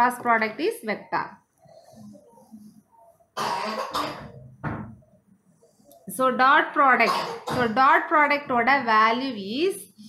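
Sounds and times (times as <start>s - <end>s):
person coughing: 3.4s - 4.4s, 7.0s - 7.8s.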